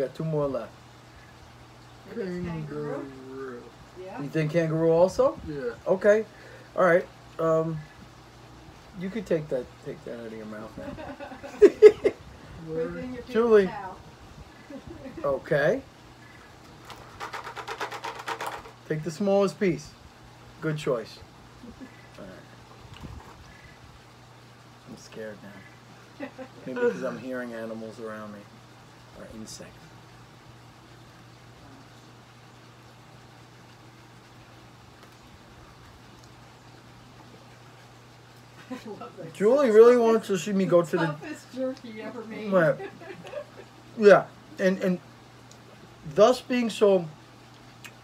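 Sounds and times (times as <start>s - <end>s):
steady low hum: 0.0s - 17.8s, 18.5s - 48.0s
person laughing: 10.8s - 12.2s, 14.7s - 15.4s, 26.2s - 27.2s, 42.7s - 43.8s.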